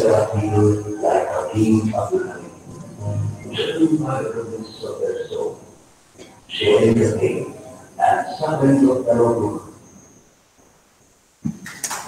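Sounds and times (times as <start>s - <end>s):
person speaking: 0.0s - 9.7s.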